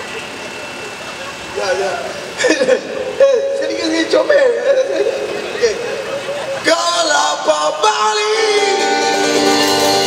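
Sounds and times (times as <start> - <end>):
crowd noise: 0.0 - 10.0
traffic hum: 0.0 - 10.0
man speaking over pa: 1.6 - 6.1
live band playing: 4.4 - 10.0.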